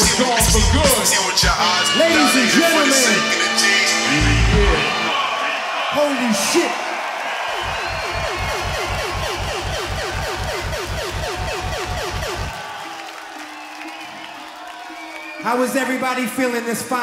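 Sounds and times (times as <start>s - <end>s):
crowd cheering: 0.0s - 17.0s
electronic kick drum hits: 7.6s - 12.6s.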